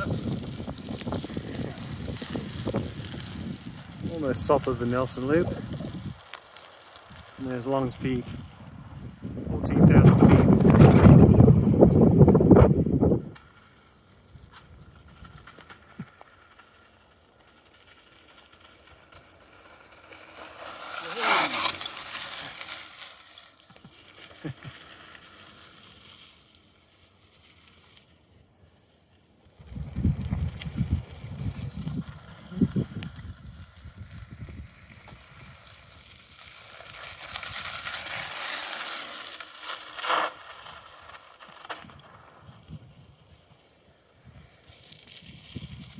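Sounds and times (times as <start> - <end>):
wind buffeting microphone: 0.0 - 6.2, 7.1 - 13.4, 29.6 - 36.2, 45.2 - 45.9
bike tyres rolling on dirt: 0.0 - 45.9.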